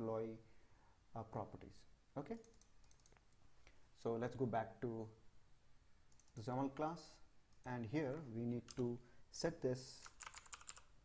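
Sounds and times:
computer mouse clicks: 2.4s - 3.3s, 6.1s - 6.4s.

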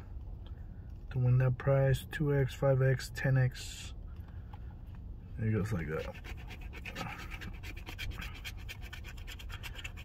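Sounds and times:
fingernail scratching paper ticket: 5.7s - 10.0s.

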